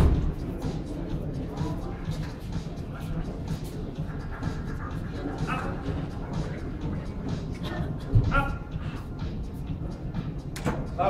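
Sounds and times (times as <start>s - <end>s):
background music: 0.0s - 11.0s
crowd voices: 0.0s - 11.0s.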